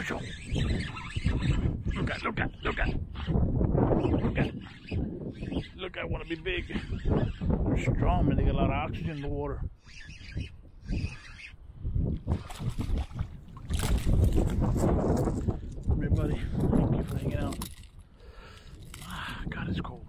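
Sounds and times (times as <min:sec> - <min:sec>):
wind on microphone: 0:00.0 - 0:20.0.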